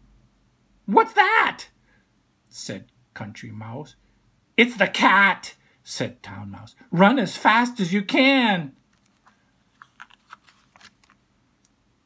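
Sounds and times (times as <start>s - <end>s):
paper page crackles: 8.9s - 11.2s.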